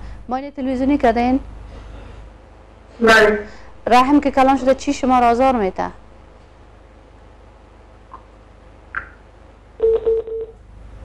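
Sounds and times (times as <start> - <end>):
low telephone beeps: 9.8 - 10.6.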